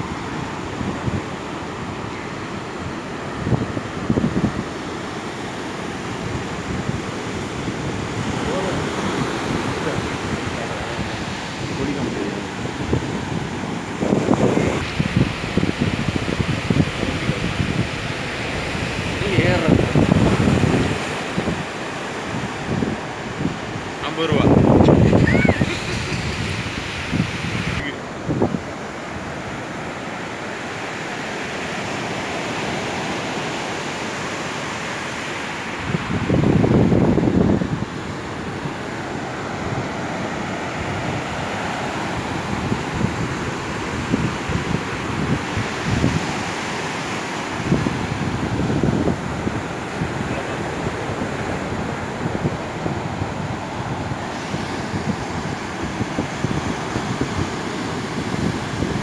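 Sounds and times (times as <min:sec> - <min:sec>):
surf breaking on beach: 0:00.0 - 0:59.0
wind buffeting microphone: 0:00.0 - 0:59.0.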